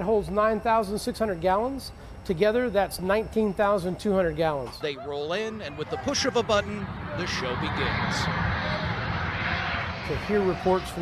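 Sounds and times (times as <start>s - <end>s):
jet aircraft roaring overhead: 4.9s - 11.0s.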